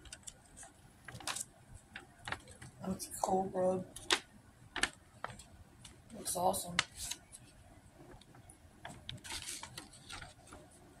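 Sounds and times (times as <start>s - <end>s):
paper rustling: 6.8s - 10.8s.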